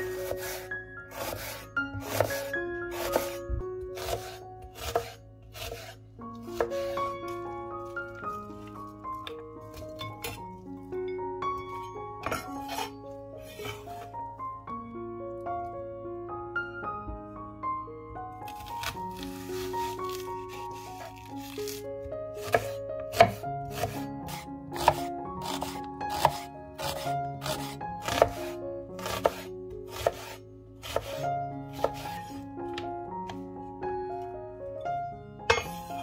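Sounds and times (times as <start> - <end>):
knife slicing onion: 0.0 - 3.4, 4.0 - 7.1, 12.2 - 14.1, 18.5 - 21.8, 22.4 - 32.3.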